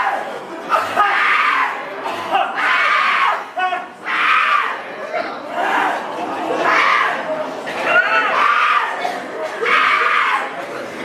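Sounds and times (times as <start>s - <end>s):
people yelling: 0.0s - 10.7s.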